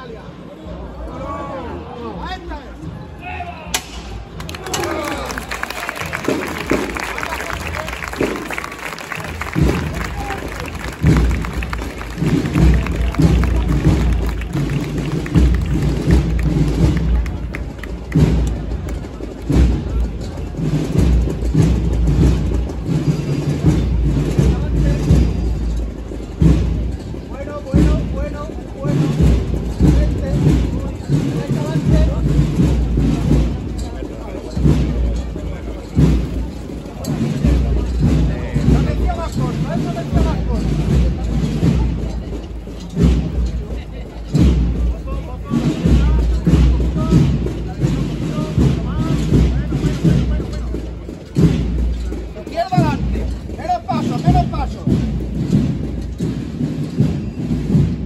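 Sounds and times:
repeated drum beat: 3.8 - 58.0.

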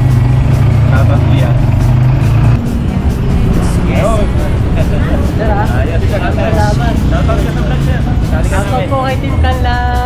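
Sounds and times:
motorcycle tricycle engine running: 0.0 - 10.0.

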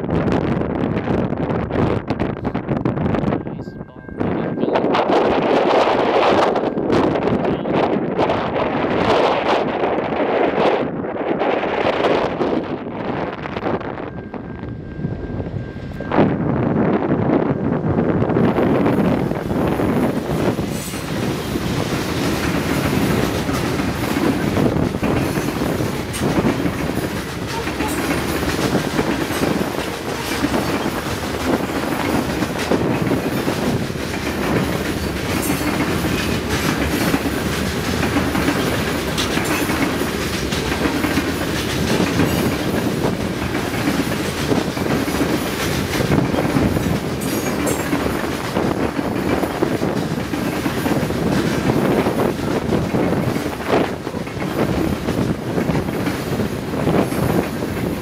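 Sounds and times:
train wheels running on rails: 0.1 - 58.0.

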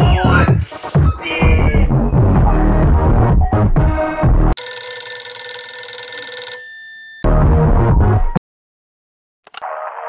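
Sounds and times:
electronic telephone ringing: 4.6 - 7.3.

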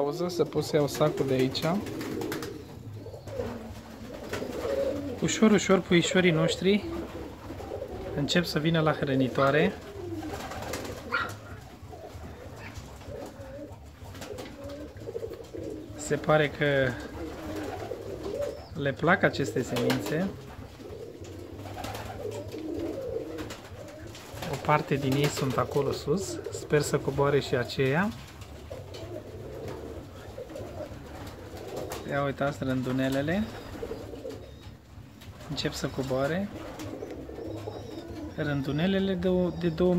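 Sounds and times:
pigeons cooing: 0.0 - 39.9.

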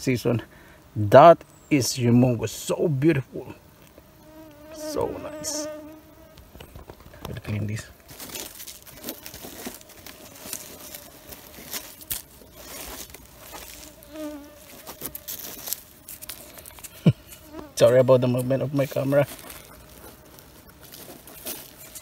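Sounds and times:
mosquitoes whining: 4.2 - 6.7
leaf litter rustling: 7.1 - 22.0.

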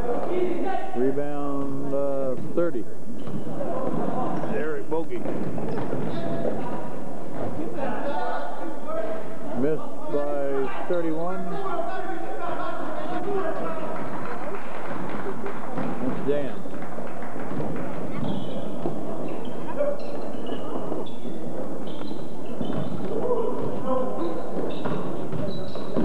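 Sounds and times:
echoing crowd chatter: 0.0 - 26.0
sneakers squeaking on court: 3.2 - 4.5, 5.2 - 7.5, 18.0 - 26.0.

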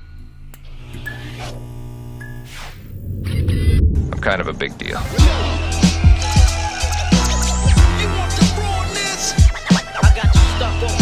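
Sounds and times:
neon sign electrical buzz: 0.0 - 3.2
whooshes: 2.5 - 5.5.

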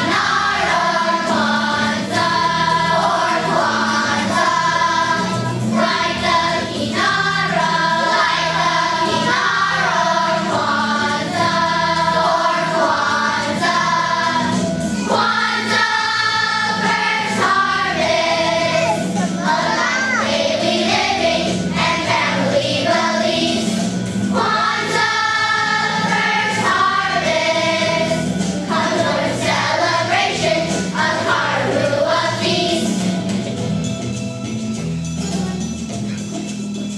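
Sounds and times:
children's choir singing: 0.0 - 33.6.

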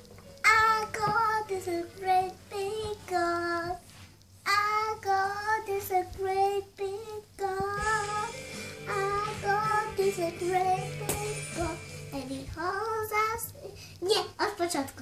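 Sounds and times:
low steady hum: 0.0 - 15.0
child singing: 0.4 - 3.8, 4.4 - 15.0.

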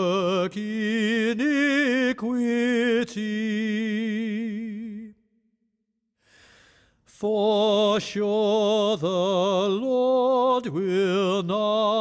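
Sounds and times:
soft breath: 6.2 - 7.1.

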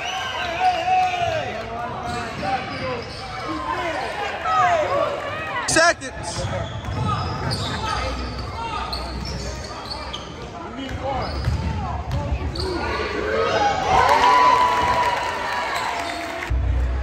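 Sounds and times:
sneakers squeaking: 0.2 - 4.6, 6.1 - 13.2.

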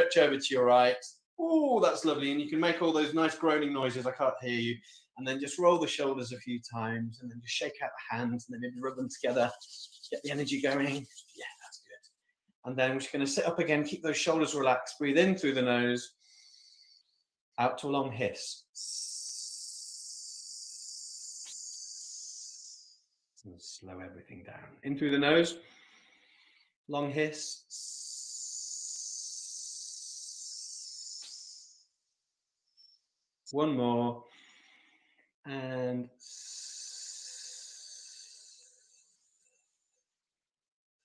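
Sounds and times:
hiss breathed through teeth: 18.8 - 23.0, 36.2 - 38.8
person hissing through teeth: 18.8 - 23.0, 27.7 - 31.8.

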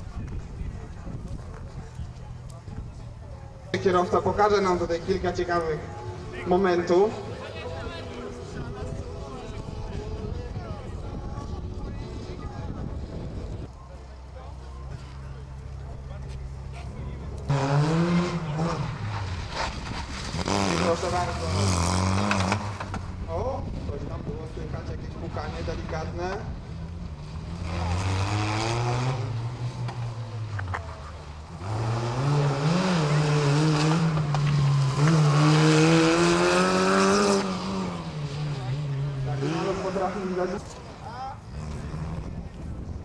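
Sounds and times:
small car engine revving: 17.4 - 23.2, 25.6 - 43.0.

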